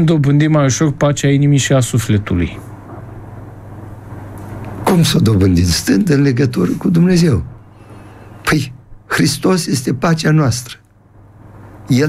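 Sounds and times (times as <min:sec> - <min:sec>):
steady low hum: 0:00.0 - 0:12.0
faint hiss: 0:00.6 - 0:12.0
man speaking: 0:04.8 - 0:07.6, 0:08.4 - 0:10.8.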